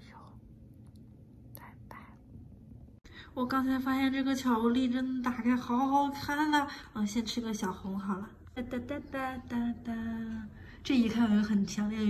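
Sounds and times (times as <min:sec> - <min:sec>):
faint room hum: 0:00.0 - 0:12.0.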